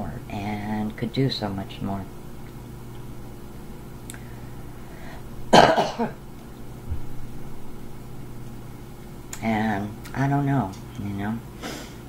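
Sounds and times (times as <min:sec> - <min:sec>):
woman coughing: 0:05.5 - 0:06.2.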